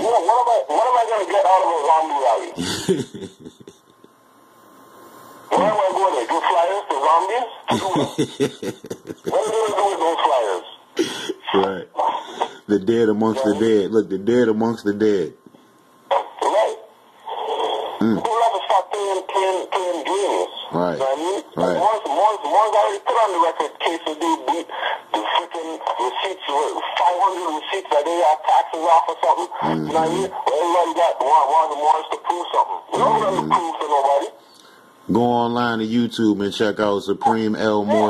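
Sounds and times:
talking over phone line: 0.0 - 3.4, 5.5 - 15.3, 16.1 - 34.5, 35.1 - 38.0.

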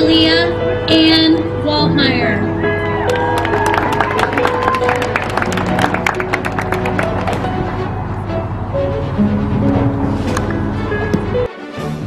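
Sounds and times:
background music: 0.0 - 12.0
audience clapping and cheering: 2.9 - 7.8.

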